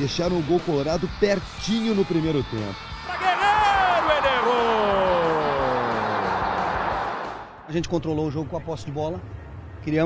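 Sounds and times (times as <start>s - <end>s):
stadium crowd noise: 2.9s - 8.6s
long shouted cry: 3.0s - 7.4s.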